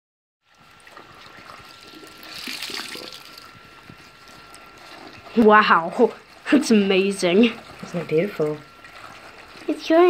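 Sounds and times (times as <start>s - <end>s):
water running from a tap into a sink: 0.5s - 10.0s
water splashing over cloth bag: 0.6s - 10.0s.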